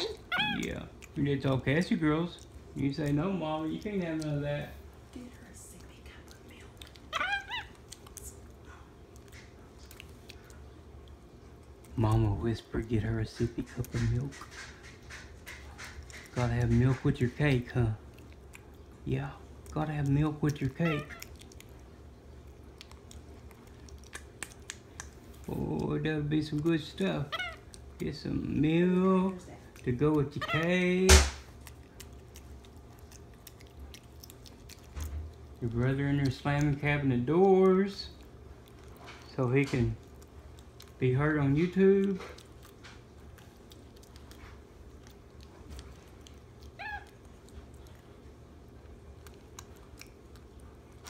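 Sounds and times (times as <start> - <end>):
monkey squeak: 0.0 - 0.6
low steady room hum: 0.0 - 51.0
monkey chewing: 0.0 - 51.0
soft mouth clicks and smacks: 0.3 - 4.4, 5.6 - 12.3, 13.3 - 28.2, 31.4 - 51.0.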